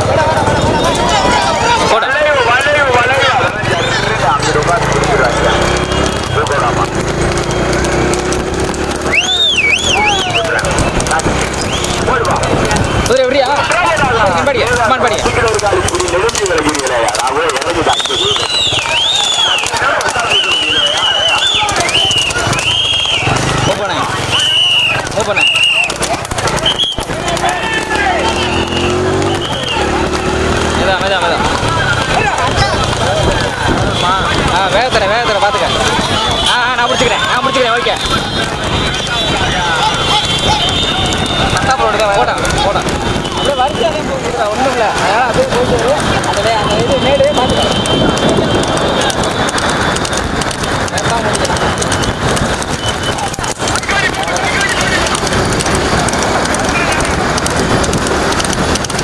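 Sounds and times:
men shouting and cheering: 0.0 - 59.0.

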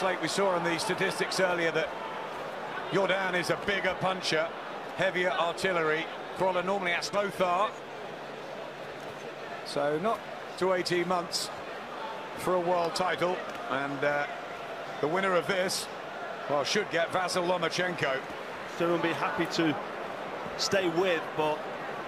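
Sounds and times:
men commentating: 0.0 - 7.8, 9.5 - 19.9, 20.5 - 21.7
arena crowd noise: 0.0 - 22.0.

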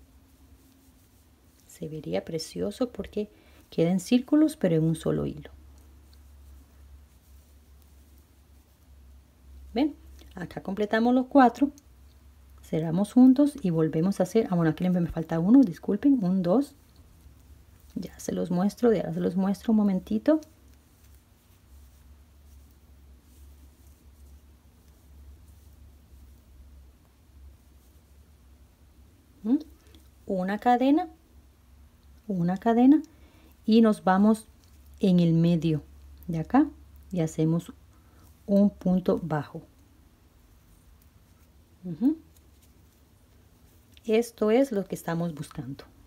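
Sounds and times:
crochet hook rustling and ticking: 0.0 - 46.0
low steady hum: 0.0 - 46.0.

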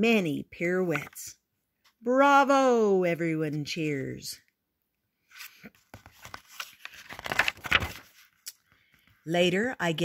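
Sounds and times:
book page turning: 5.3 - 9.2.

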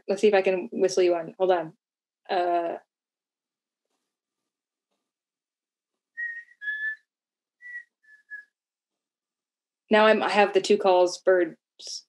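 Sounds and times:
person whistling a bird call: 6.2 - 8.5.

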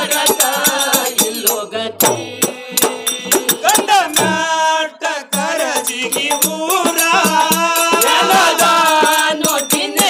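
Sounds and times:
drum beats: 0.0 - 10.0
men singing devotional folk song: 0.0 - 10.0.

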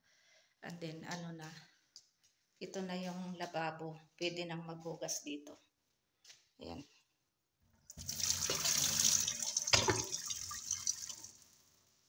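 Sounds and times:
tap water running into metal sink: 7.9 - 11.4.

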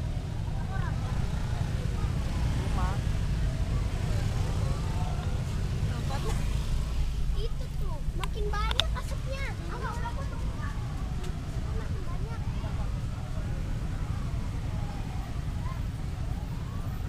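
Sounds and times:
car rumbling in slow traffic: 0.0 - 17.0
faint voices: 0.0 - 17.0.

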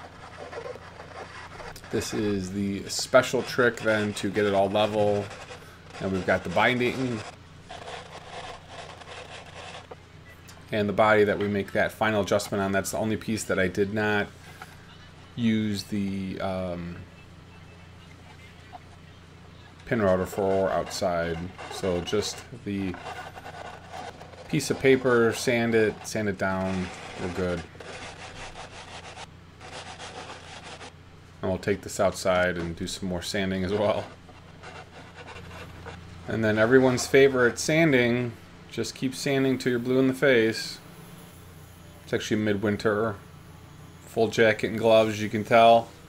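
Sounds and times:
sandpaper rubbing on wood: 0.0 - 9.9, 19.9 - 30.9.

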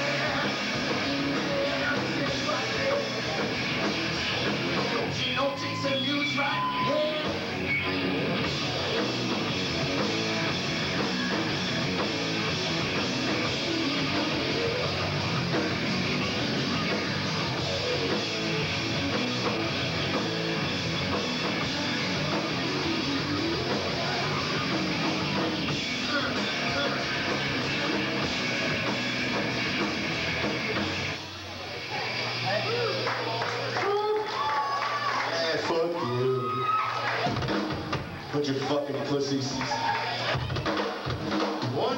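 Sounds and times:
live rock band playing: 0.0 - 33.9, 37.1 - 38.3, 39.7 - 41.9.

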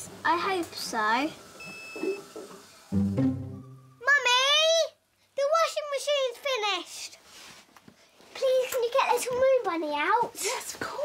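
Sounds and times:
washing machine electronic beep: 1.6 - 4.0.

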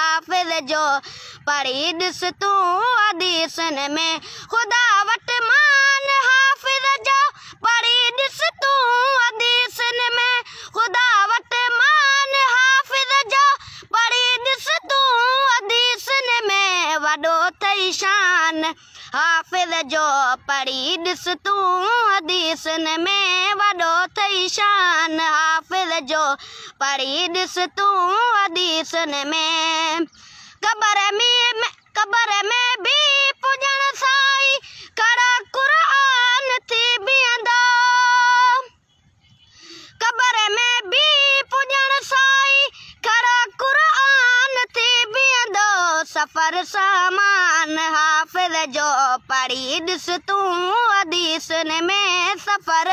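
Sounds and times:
boy singing: 0.0 - 38.8, 39.7 - 52.9.

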